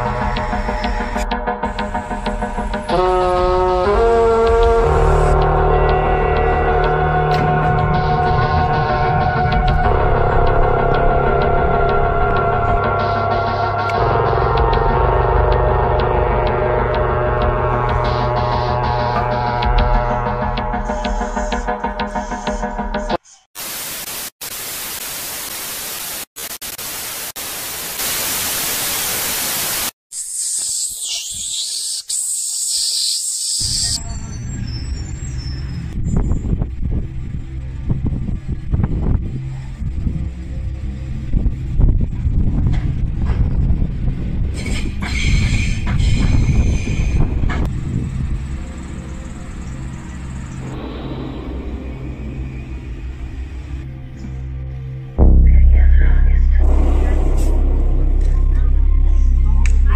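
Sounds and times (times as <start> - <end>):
music with deep bass line: 0.0 - 23.2, 36.0 - 59.9
tv static hiss: 23.6 - 30.9
glitchy transition: 50.6 - 54.1, 55.2 - 59.9.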